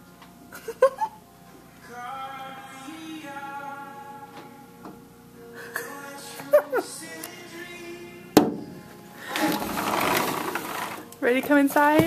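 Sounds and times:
quiet electronic tune: 0:00.0 - 0:12.0
buzzing motor-like noise: 0:09.2 - 0:11.3.

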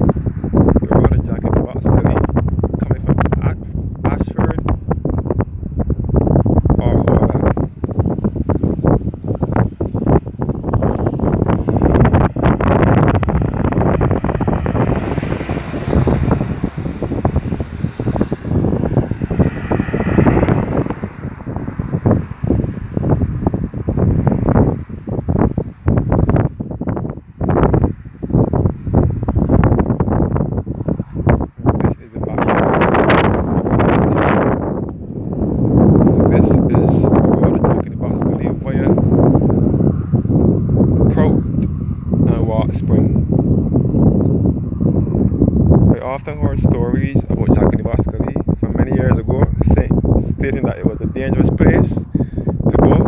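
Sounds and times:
wind buffeting microphone: 0:00.0 - 0:53.0.

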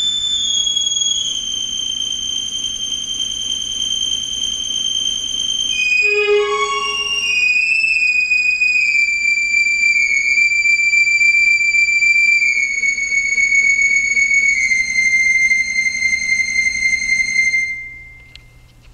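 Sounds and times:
very high synthesizer note: 0:05.8 - 0:07.8.

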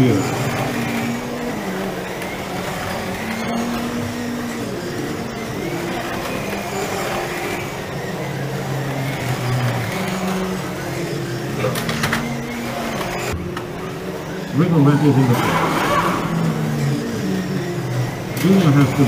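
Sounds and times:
slot car electric motors whining: 0:00.0 - 0:19.0.

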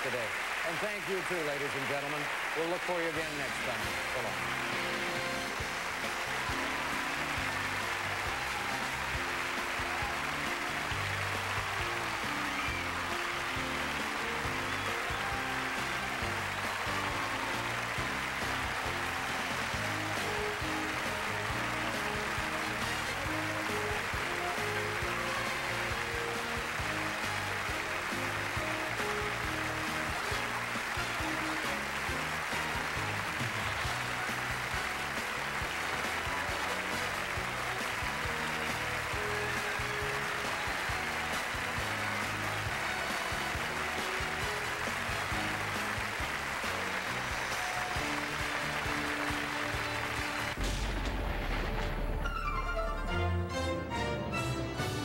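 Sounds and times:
studio audience applause: 0:00.0 - 0:52.8
game show theme music: 0:00.0 - 0:55.0.

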